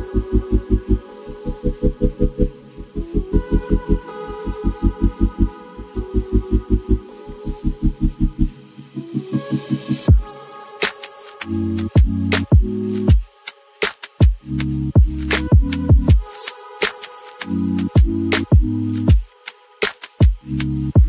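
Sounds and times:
held synth chords: 0:00.0 - 0:21.0.

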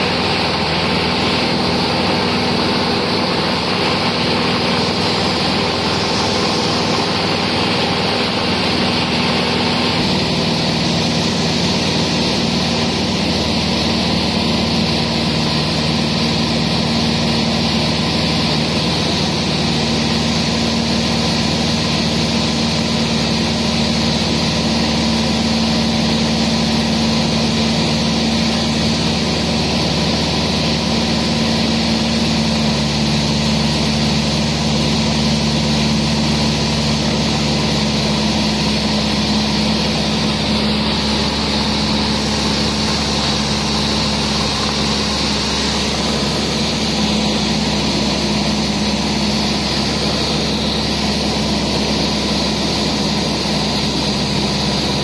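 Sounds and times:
plane engine and propeller droning: 0:00.0 - 0:55.0.

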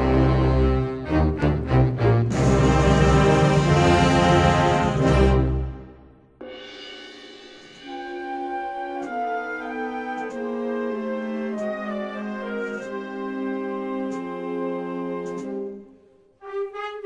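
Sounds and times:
wind band playing a march: 0:00.0 - 0:06.0, 0:07.8 - 0:15.8, 0:16.4 - 0:17.0.

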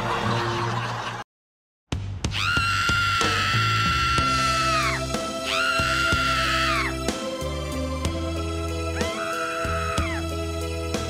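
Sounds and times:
upbeat background music: 0:02.0 - 0:11.0
woman screaming: 0:02.3 - 0:07.0, 0:09.0 - 0:10.2.

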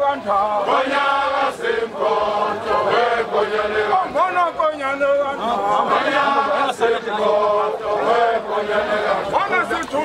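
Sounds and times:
men chanting in unison: 0:00.0 - 0:10.0.

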